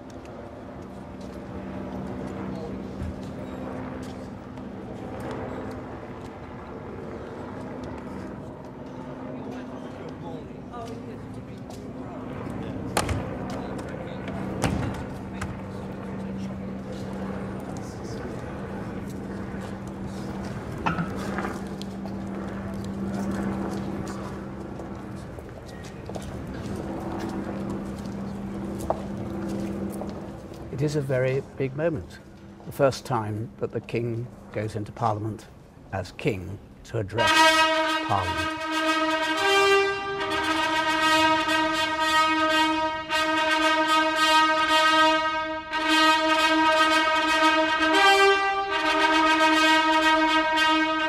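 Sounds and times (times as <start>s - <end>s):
steady low hum: 0.0s - 51.0s
trumpet fanfare: 37.2s - 51.0s.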